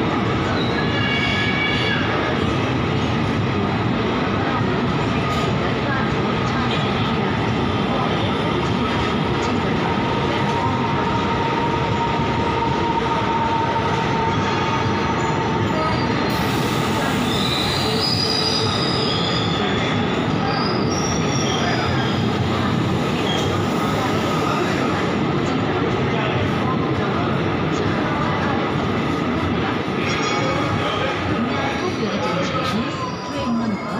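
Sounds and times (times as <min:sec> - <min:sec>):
train coaches rolling on rails: 0:00.0 - 0:33.9.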